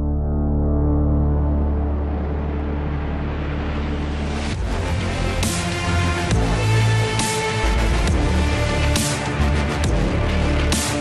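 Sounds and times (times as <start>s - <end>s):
low music drone: 0.0s - 11.0s.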